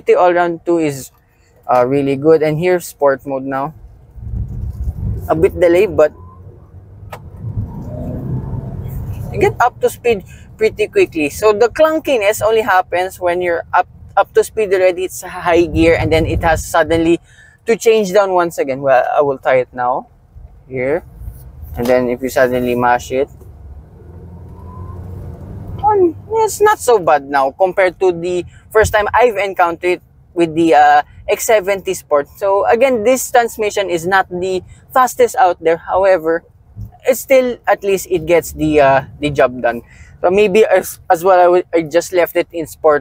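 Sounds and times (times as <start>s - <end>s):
car engine and road rumble: 0.0s - 43.0s
car engine accelerating: 3.8s - 12.3s, 20.4s - 26.9s.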